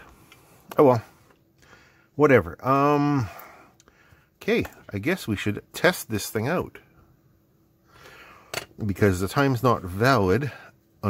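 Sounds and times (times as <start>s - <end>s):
soft intake of breath: 0.0s - 2.2s, 3.2s - 4.4s, 7.8s - 8.6s
man speaking: 0.7s - 1.2s, 2.2s - 3.4s, 4.4s - 6.9s, 8.8s - 10.6s.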